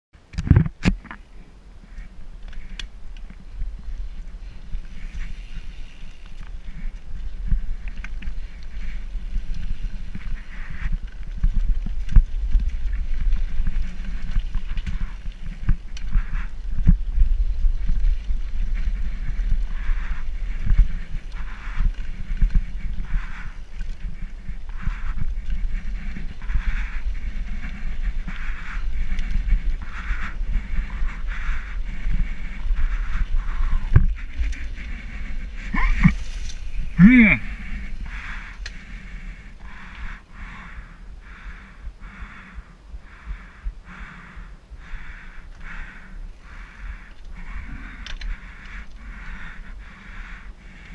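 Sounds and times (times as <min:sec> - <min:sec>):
bike riding rumble: 0:00.2 - 0:50.9.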